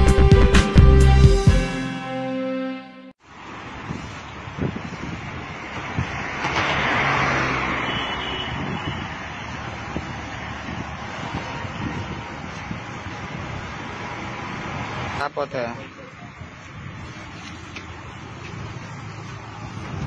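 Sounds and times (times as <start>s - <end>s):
street traffic: 3.2s - 20.0s
wind on microphone: 3.7s - 14.9s, 16.2s - 17.4s, 19.5s - 20.0s.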